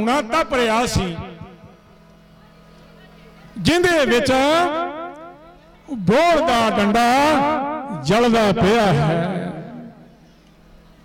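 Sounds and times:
man speaking into a microphone: 0.0 - 1.6, 3.6 - 5.0, 5.9 - 10.0.

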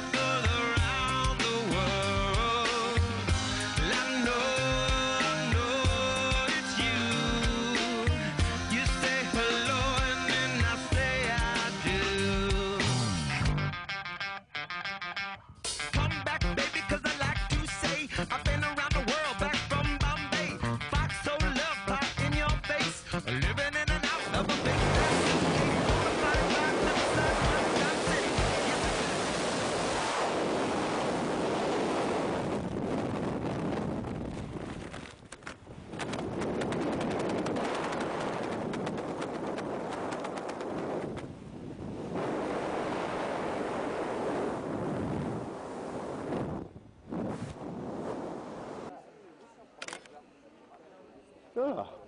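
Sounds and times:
wind buffeting microphone: 24.7 - 48.9.

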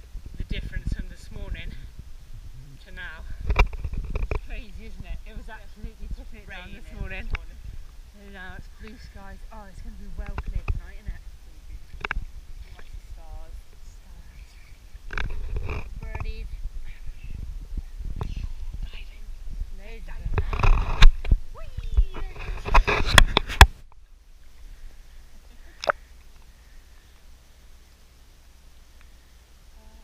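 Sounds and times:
water splashing and lapping: 11.8 - 13.8.

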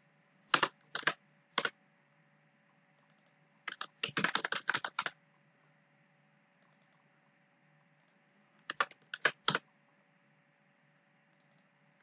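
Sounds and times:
computer keyboard typing: 0.5 - 1.8, 3.0 - 5.2, 6.6 - 7.0, 8.0 - 9.7, 11.3 - 11.7.

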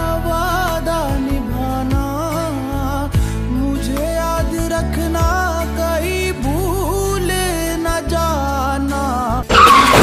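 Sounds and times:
truck tyre screech: 9.5 - 10.0.

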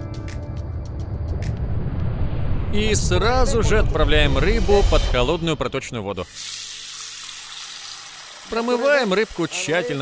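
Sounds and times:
background music: 0.0 - 1.7
boiling water pouring into pan: 6.2 - 10.0.

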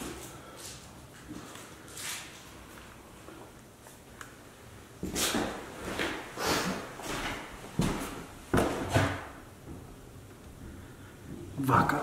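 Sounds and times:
heavy footsteps on wooden floor: 5.0 - 11.6.

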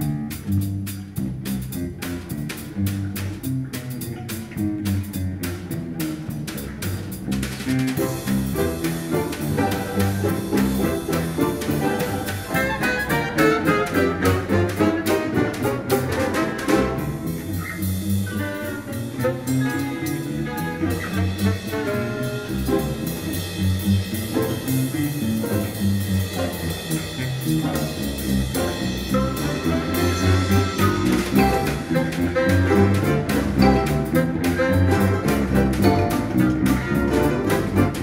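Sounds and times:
contrabass balalaika plucking: 0.2 - 38.0
folk string and wind ensemble: 8.0 - 38.0.

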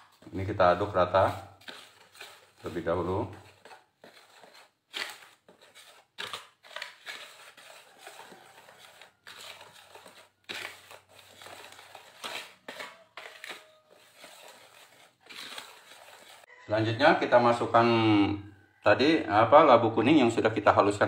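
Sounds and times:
whisk scraping a bowl: 0.0 - 16.5.

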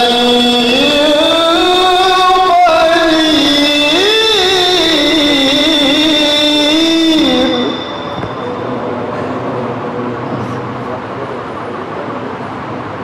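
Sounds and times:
man reciting melodically: 0.0 - 8.2
steady background noise: 0.0 - 13.0.

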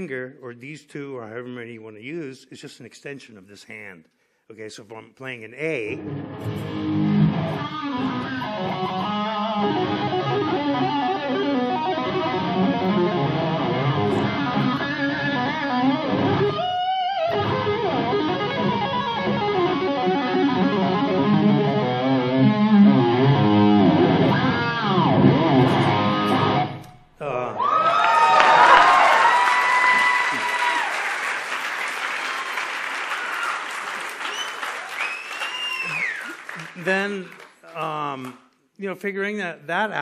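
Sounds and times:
overdriven electric guitar tapping: 6.0 - 27.0.

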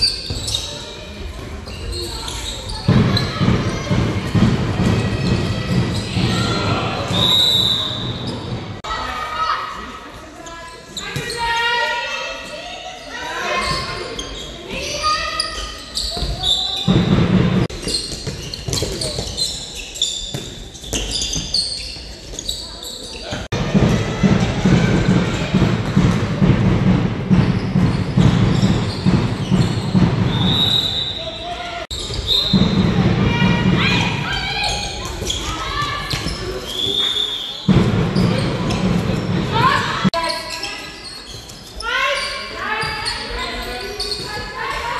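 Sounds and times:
voices echoing in hall: 0.0 - 44.9
ball bouncing on hall floor: 16.0 - 22.6, 23.3 - 30.6, 31.9 - 37.0.

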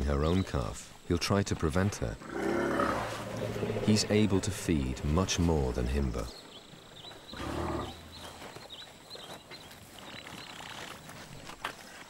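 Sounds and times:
rustling in dry scrub: 5.3 - 12.0.

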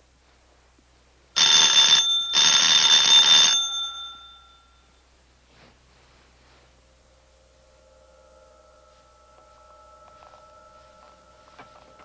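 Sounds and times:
electric bell ringing: 1.4 - 5.3, 6.4 - 12.0.

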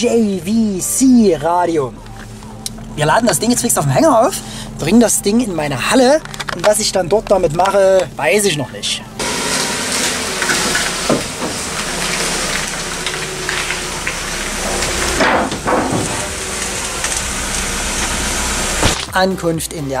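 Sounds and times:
car engine running: 0.0 - 19.6.

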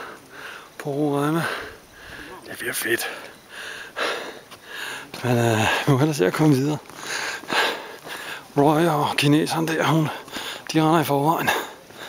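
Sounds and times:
person breathing noisily: 0.0 - 0.8, 1.4 - 2.4, 3.0 - 5.1, 7.0 - 8.5.

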